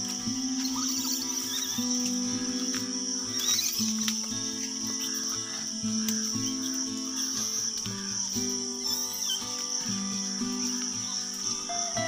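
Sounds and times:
background music: 0.0 - 12.0
high-pitched insect drone: 0.0 - 12.0.

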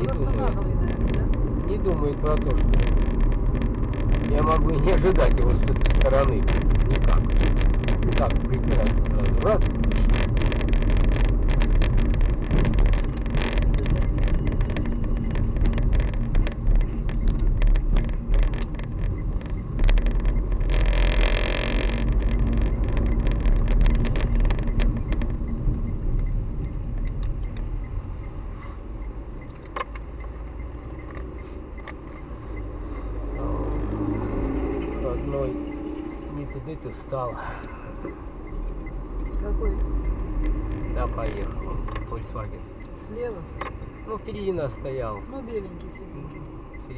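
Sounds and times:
car engine and tyre noise: 0.0 - 46.9.

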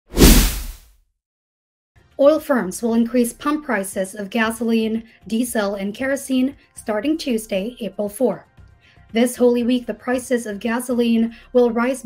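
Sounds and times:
whoosh with deep bass hit: 0.1 - 0.8.

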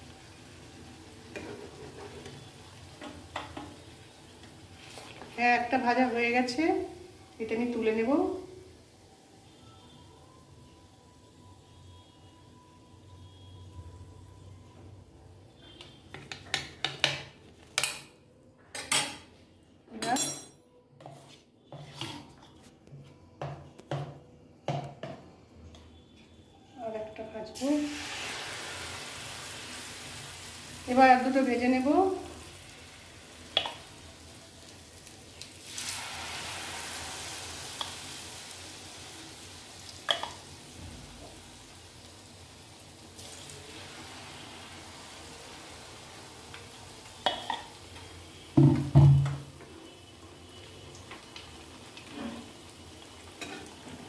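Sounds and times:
batter sizzling in hot oil: 0.0 - 10.4, 27.6 - 54.0
metal utensils clinking on cookware: 18.7 - 19.2, 20.0 - 20.6, 53.4 - 53.7.

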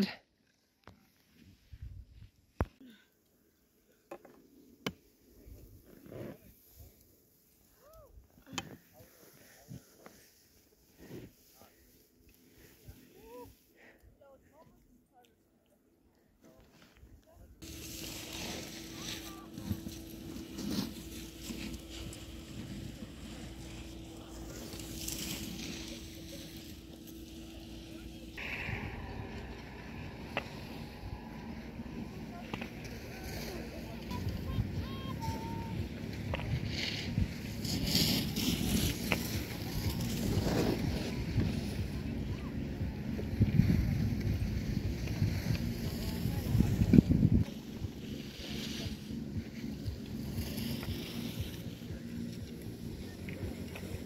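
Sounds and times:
skis scraping over snow: 4.4 - 7.8, 8.4 - 13.7, 17.6 - 54.0
wind on microphone: 39.9 - 47.5.

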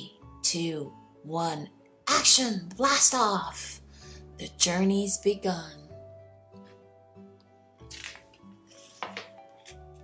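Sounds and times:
gentle background music: 0.0 - 10.0
paper page turning: 7.9 - 10.0.

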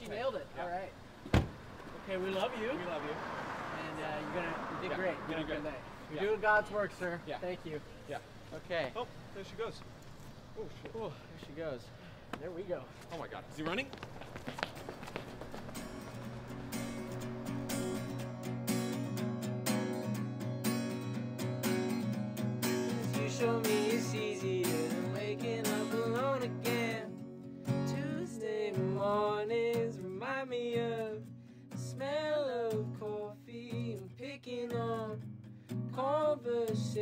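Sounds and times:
strummed acoustic guitar: 15.7 - 37.0
person singing: 22.9 - 31.2.

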